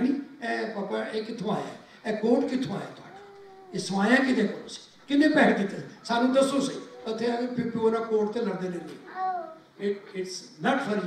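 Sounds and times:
man speaking over loudspeakers: 0:00.0 - 0:03.1, 0:03.7 - 0:09.0, 0:09.8 - 0:11.0.

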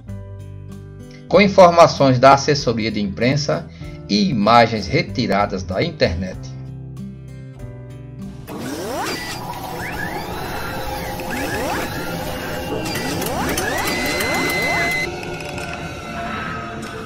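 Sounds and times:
music: 0:00.0 - 0:17.0
mechanical clicking and clanking: 0:08.5 - 0:15.8
high held tone: 0:09.4 - 0:15.2.

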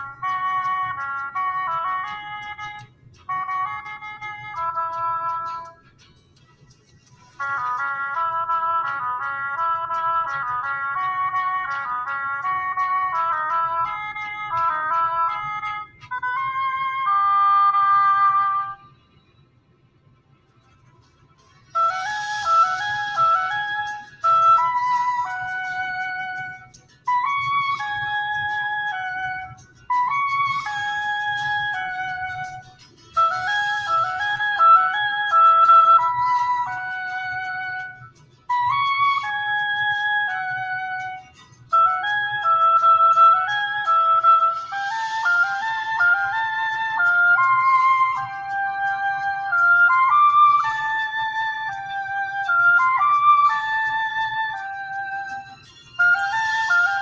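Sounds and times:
solo oboe melody: 0:00.0 - 0:05.9, 0:07.2 - 0:19.0, 0:21.6 - 0:57.0.

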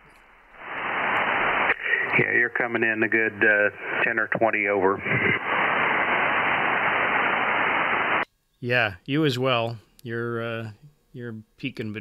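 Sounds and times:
radio static hiss: 0:00.0 - 0:08.3
voice over radio: 0:01.6 - 0:05.9.

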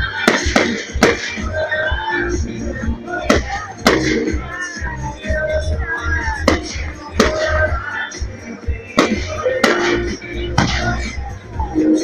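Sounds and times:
music: 0:00.0 - 0:12.0
voices: 0:00.0 - 0:12.0
fireworks bangs: 0:00.1 - 0:01.8, 0:03.2 - 0:04.5, 0:06.3 - 0:07.8, 0:08.9 - 0:11.2.

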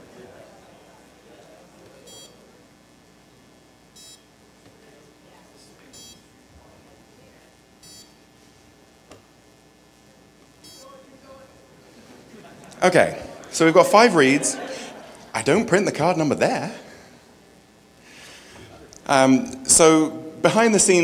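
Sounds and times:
card reader beeping: 0:02.0 - 0:02.4, 0:07.8 - 0:08.2, 0:10.6 - 0:11.0.

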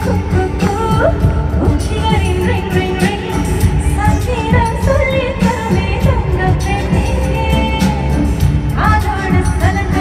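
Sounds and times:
band with heavy bass: 0:00.0 - 0:10.0
woman singing: 0:00.0 - 0:10.0.

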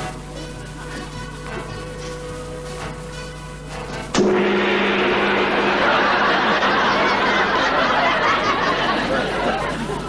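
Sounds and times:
sudden loud strike: 0:04.2 - 0:08.5
low ringing tone: 0:04.2 - 0:08.7
even wash of noise: 0:04.2 - 0:09.1.

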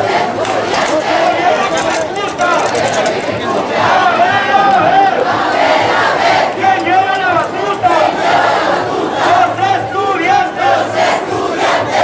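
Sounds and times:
crowd shouting and chanting: 0:00.0 - 0:12.0.

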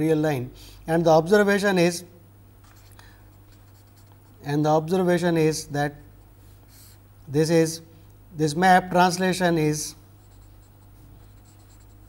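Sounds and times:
steady low hum: 0:00.0 - 0:12.0
felt-tip marker scratching paper: 0:03.5 - 0:04.2, 0:10.2 - 0:12.0.

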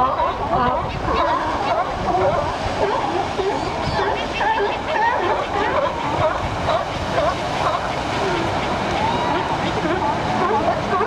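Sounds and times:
ocean surf on rocks: 0:00.0 - 0:11.0.

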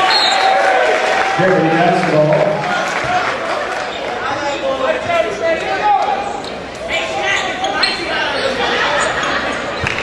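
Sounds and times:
echoing voices: 0:01.4 - 0:09.8.

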